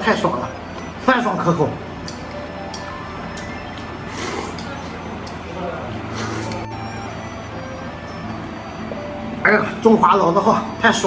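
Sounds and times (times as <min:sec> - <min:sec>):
background music: 0:00.0 - 0:11.0
slurping noodles: 0:04.1 - 0:04.7, 0:06.1 - 0:06.6.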